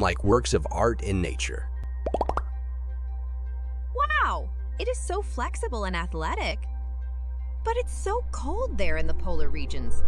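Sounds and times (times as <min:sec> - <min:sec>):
soft background music: 0:00.0 - 0:10.0
cartoon bloop pops: 0:02.0 - 0:02.5.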